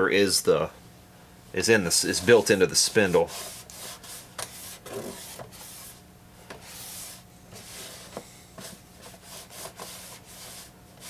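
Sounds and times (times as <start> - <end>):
faint steady hum: 0.0 - 11.0
cloth rubbing on turntable: 1.9 - 6.0, 6.6 - 11.0.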